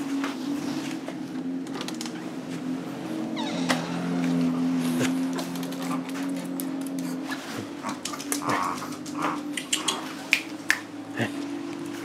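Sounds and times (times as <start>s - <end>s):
claws clicking and tapping: 7.8s - 10.8s.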